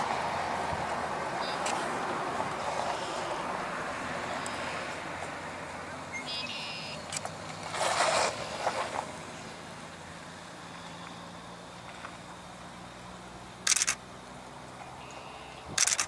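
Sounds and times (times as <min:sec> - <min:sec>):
camera shutter clicks: 0:13.6 - 0:14.0, 0:15.7 - 0:16.0.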